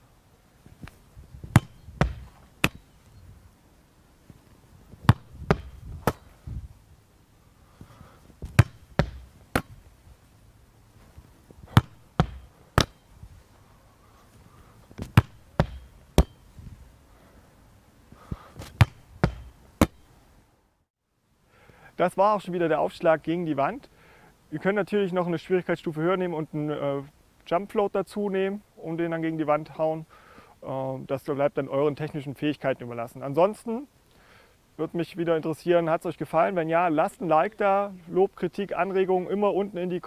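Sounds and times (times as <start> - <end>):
volleyball smacks against wall: 1.5 - 2.8, 5.0 - 6.3, 8.4 - 9.8, 11.7 - 13.0, 15.0 - 16.4, 18.6 - 20.0.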